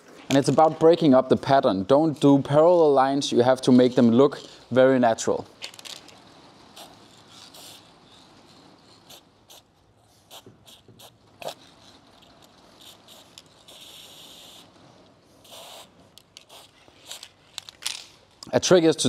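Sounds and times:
spray paint can hissing: 6.7s - 14.7s, 15.4s - 17.7s.

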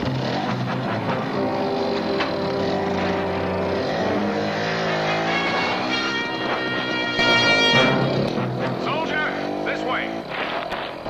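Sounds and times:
background film music: 0.0s - 10.5s
motorcycle engine revving: 0.0s - 11.0s.

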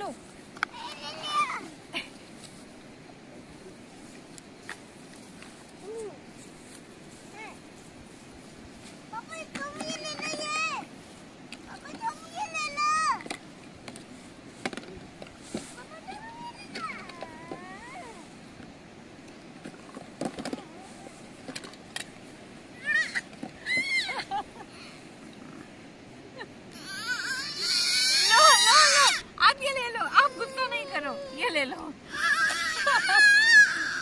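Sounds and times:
baby crying loudly: 26.8s - 29.2s, 30.1s - 34.0s.

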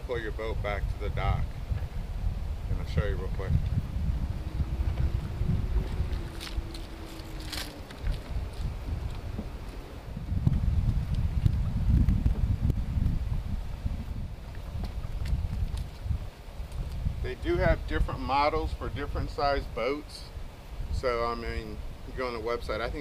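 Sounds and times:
faint steady hum: 0.0s - 23.0s
wind buffeting microphone: 0.0s - 23.0s.

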